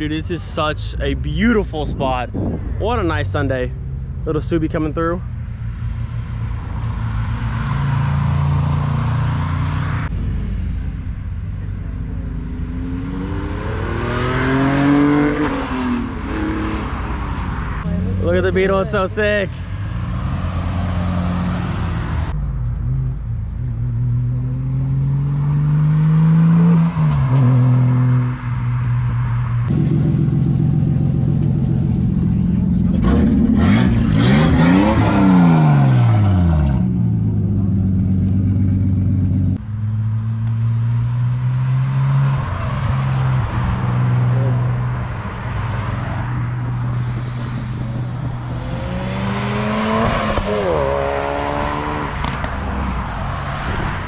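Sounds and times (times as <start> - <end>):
cars accelerating past: 12.2 - 54.0.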